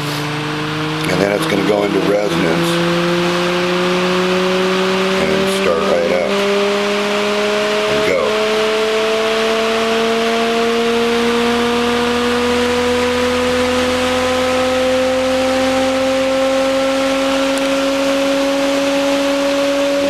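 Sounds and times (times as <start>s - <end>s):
motor whine rising in pitch: 0.0s - 20.0s.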